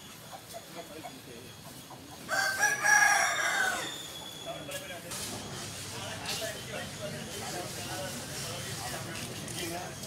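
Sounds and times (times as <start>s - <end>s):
rooster crowing: 2.3s - 4.0s.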